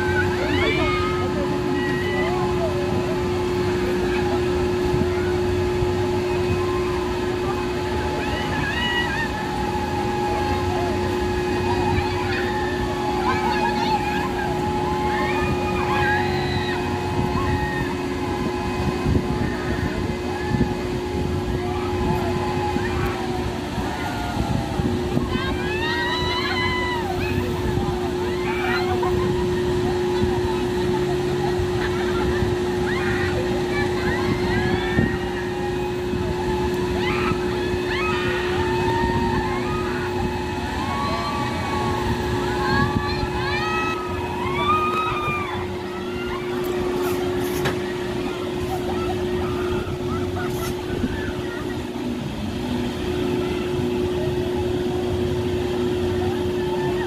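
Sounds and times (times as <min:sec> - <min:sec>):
low rumbling: 0:00.0 - 0:57.0
ride machine hum: 0:00.0 - 0:57.0
riders screaming: 0:21.8 - 0:27.5, 0:36.5 - 0:47.4.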